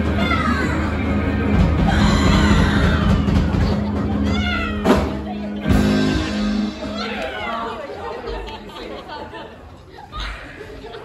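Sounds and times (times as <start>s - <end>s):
live rock band playing: 0.0s - 8.4s.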